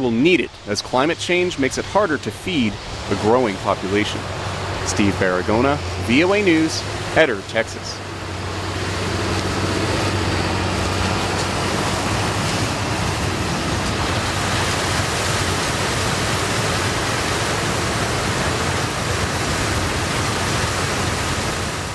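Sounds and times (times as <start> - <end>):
combine harvester running: 0.0 - 21.9
low engine hum: 0.0 - 21.9.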